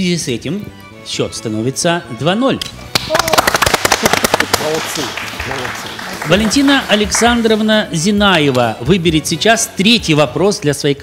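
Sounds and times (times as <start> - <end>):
people clapping: 2.6 - 8.7.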